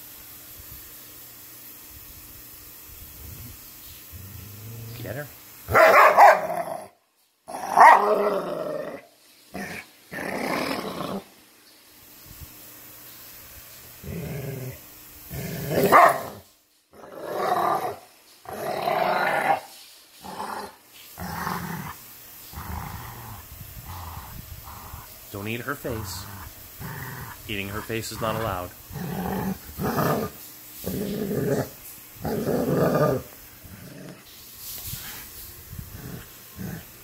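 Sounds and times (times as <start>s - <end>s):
dogs growling in play: 4.1s - 11.3s, 13.9s - 37.0s.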